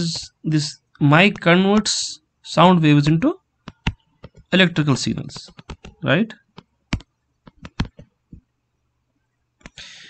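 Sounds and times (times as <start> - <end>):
stylus tapping on tablet: 3.6 - 4.5, 5.3 - 8.4.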